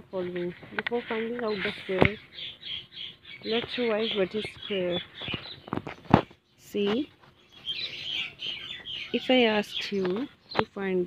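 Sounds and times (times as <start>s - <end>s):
small birds twittering: 0.0s - 11.0s.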